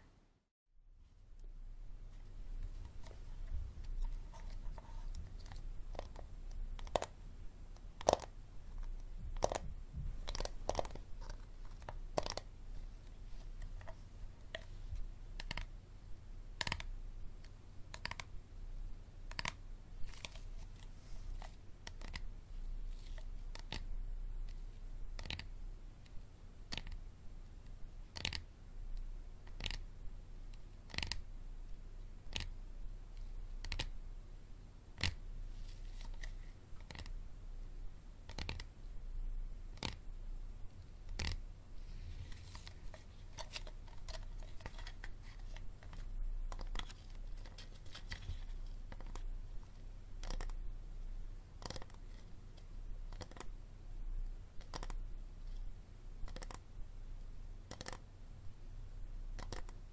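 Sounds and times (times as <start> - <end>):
fingers tapping plastic bottle: 50.2 - 50.5, 57.7 - 58.0.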